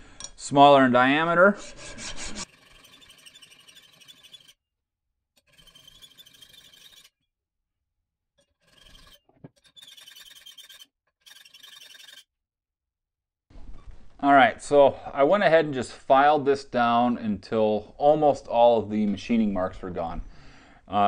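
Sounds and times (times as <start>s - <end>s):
file rasping on metal: 1.5s - 4.6s, 5.4s - 7.2s, 8.4s - 12.3s.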